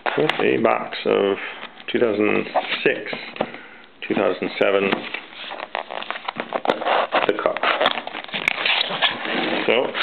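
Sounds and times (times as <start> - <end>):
cardboard packaging crackling and tearing: 5.6 - 10.0.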